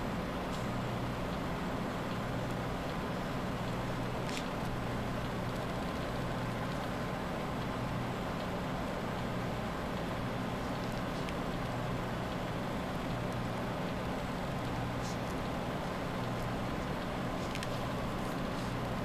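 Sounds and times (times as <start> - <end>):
low background hum with hiss: 0.0 - 19.0.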